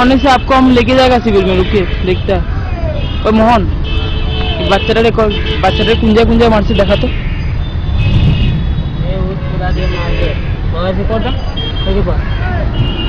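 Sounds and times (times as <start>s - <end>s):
street traffic rumble: 0.0s - 13.0s
voices talking: 0.0s - 13.0s.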